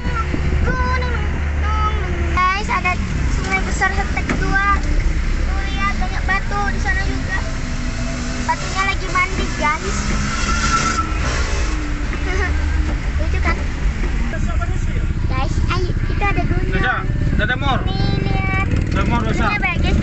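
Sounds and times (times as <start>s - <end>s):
indistinct voices: 0.0s - 20.0s
low engine and road rumble: 0.0s - 20.0s.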